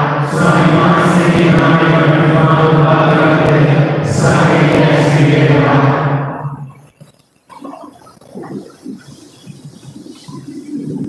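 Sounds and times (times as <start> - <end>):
voices singing chant: 0.0 - 6.9.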